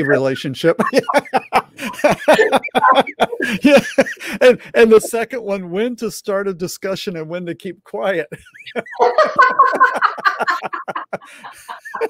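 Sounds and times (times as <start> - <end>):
adults laughing together: 0.0 - 5.0, 8.3 - 12.0.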